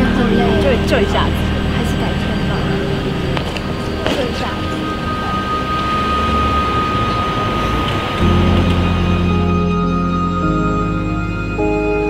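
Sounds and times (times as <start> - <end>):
people talking: 0.0 - 8.7
city traffic drone: 0.0 - 12.0.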